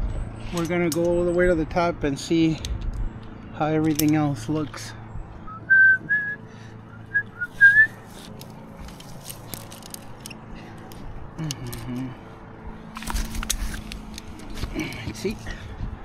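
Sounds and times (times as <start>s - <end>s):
climbing gear clicking: 2.4s - 4.9s, 7.4s - 16.0s
climbing gear clinking and rattling: 2.5s - 5.0s, 7.8s - 12.2s, 12.8s - 15.8s
person whistling: 5.5s - 8.0s.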